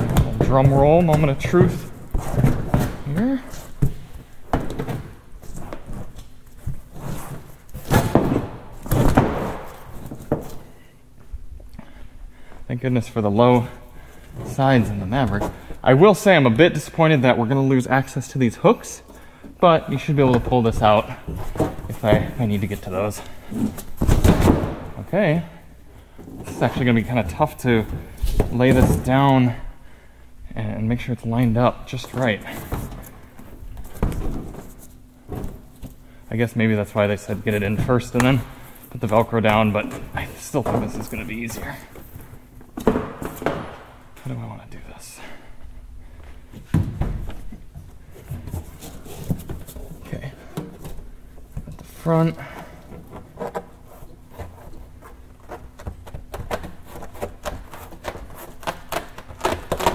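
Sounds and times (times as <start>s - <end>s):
mat scuffing and handling: 0.0s - 11.3s, 46.1s - 59.9s.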